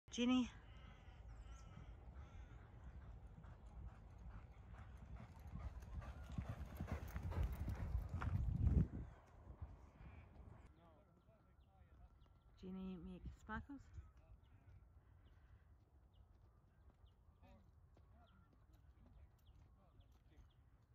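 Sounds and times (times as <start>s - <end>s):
horse hoofbeats galloping: 1.8s - 10.0s.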